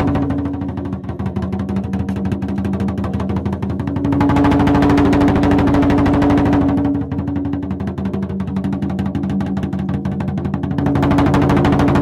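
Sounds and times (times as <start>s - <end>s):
fast rolling drumbeat: 0.0s - 12.0s.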